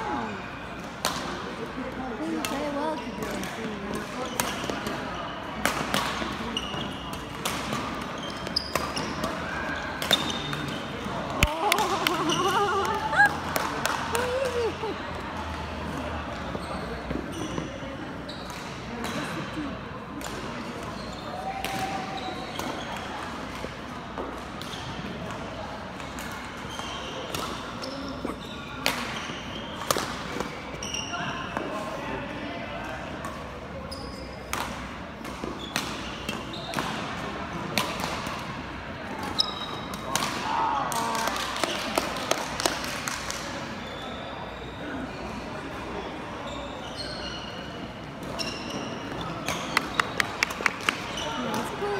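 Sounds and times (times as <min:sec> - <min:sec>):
shoes squeaking on court: 0:06.1 - 0:14.8, 0:16.3 - 0:19.5, 0:20.6 - 0:21.4, 0:26.4 - 0:31.6, 0:33.8 - 0:34.5, 0:39.2 - 0:40.1, 0:45.8 - 0:51.9.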